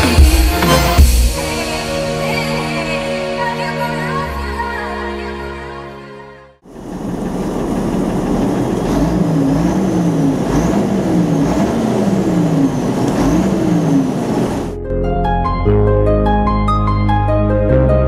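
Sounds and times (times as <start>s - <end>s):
tractor diesel engine revving: 6.6s - 14.8s.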